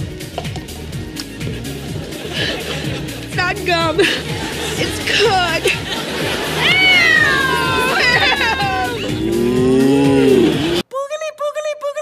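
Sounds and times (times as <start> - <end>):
party music: 0.0 - 10.8
person mooing like a cow: 8.6 - 10.8.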